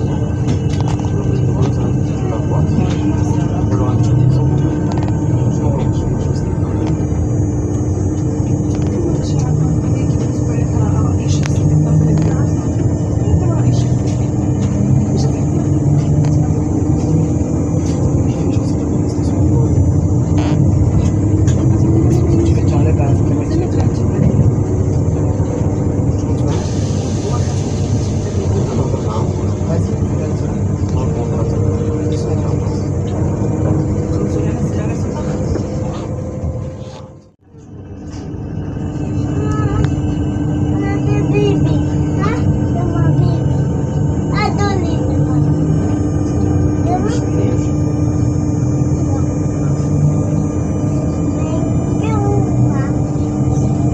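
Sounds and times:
train equipment humming: 0.0s - 53.9s.

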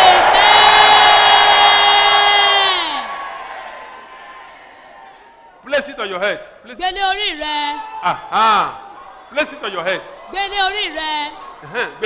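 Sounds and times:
congregation shouting together: 0.0s - 5.5s, 6.9s - 12.0s
crowd murmur: 10.0s - 12.0s.

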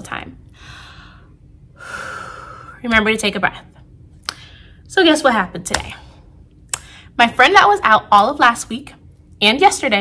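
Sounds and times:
woman speaking: 0.0s - 0.4s, 2.8s - 3.8s, 4.9s - 6.1s, 7.2s - 10.0s
woman breathing in deeply: 0.5s - 2.8s.

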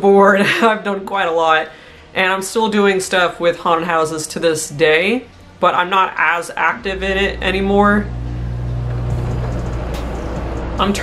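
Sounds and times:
air conditioner humming: 0.1s - 11.0s.

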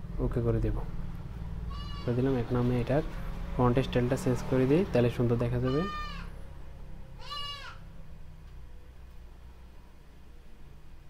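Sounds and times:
low steady hum: 0.0s - 11.0s
high-pitched animal cry: 1.7s - 2.1s, 5.6s - 6.4s, 7.2s - 7.8s.

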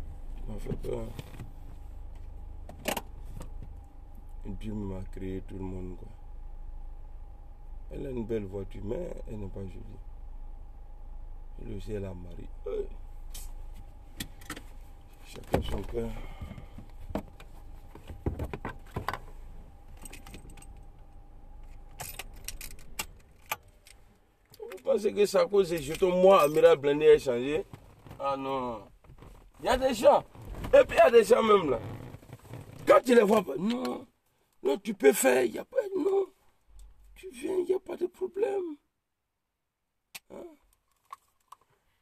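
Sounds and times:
car cabin rumble: 0.0s - 33.9s.

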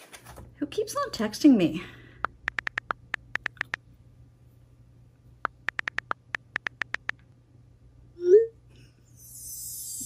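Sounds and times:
phone touch keyboard clicks: 2.2s - 3.8s, 5.4s - 7.3s.

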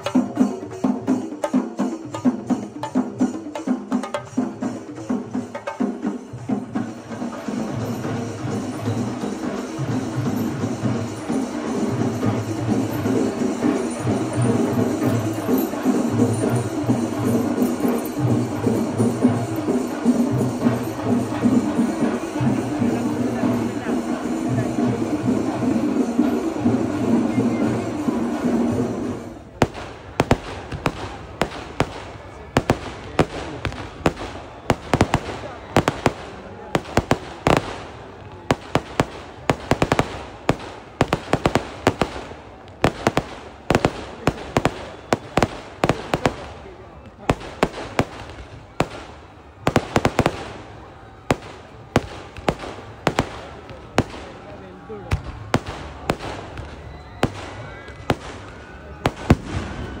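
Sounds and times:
voices: 0.0s - 60.0s
firecrackers cracking: 7.3s - 60.0s.

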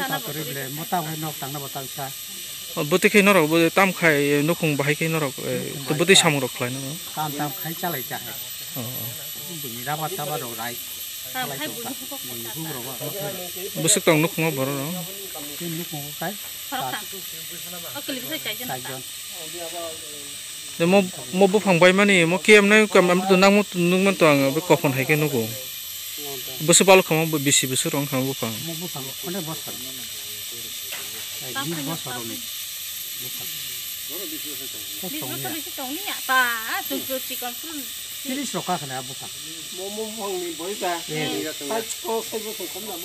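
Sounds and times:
faint high hiss: 0.0s - 43.0s
man speaking: 2.7s - 10.8s, 11.4s - 17.0s, 20.8s - 25.7s, 26.6s - 30.0s, 38.4s - 43.0s
man talking: 2.7s - 10.8s, 11.5s - 17.0s, 20.8s - 25.7s, 26.5s - 30.0s, 38.4s - 43.0s.

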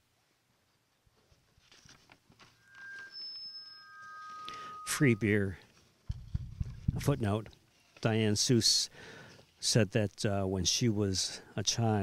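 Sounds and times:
thin steady electronic tones: 2.6s - 6.5s.

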